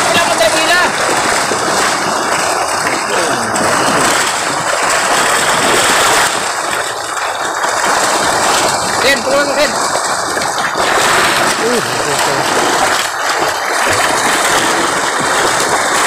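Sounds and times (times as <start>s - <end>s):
fish thrashing and splashing water: 0.0s - 16.0s.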